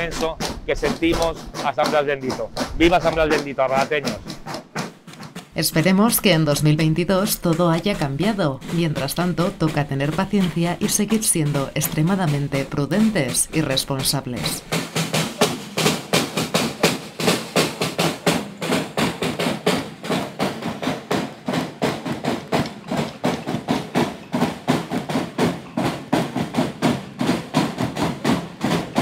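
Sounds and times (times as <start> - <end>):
side drum beaten with sticks: 0.0 - 29.0.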